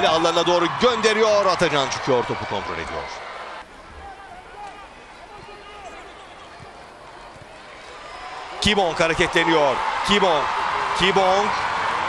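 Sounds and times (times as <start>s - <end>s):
low crowd murmur: 3.6s - 8.5s.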